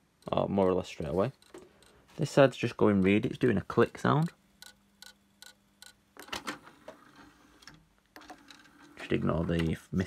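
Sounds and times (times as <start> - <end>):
cd player mechanism ticking: 0.0 - 2.0, 4.1 - 7.0.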